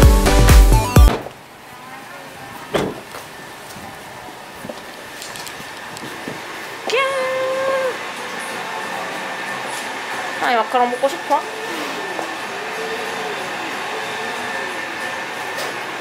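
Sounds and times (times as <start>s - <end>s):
mechanical hum with whine: 1.0s - 16.0s.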